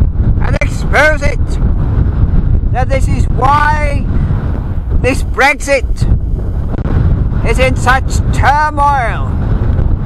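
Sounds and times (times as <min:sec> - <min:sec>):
wind buffeting microphone: 0:00.0 - 0:10.0
man's voice: 0:00.4 - 0:01.6, 0:02.7 - 0:04.2, 0:05.0 - 0:06.1, 0:07.4 - 0:09.4.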